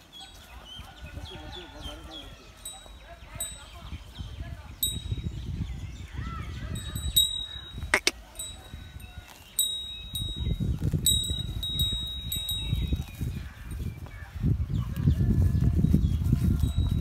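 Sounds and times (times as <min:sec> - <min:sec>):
small metal bell jingling: 0:02.6 - 0:04.0, 0:04.8 - 0:05.6, 0:06.6 - 0:13.6, 0:16.6 - 0:17.0.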